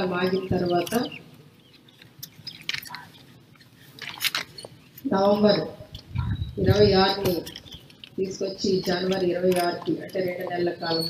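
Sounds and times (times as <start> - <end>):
woman speaking: 5.1 - 7.6, 8.2 - 11.0.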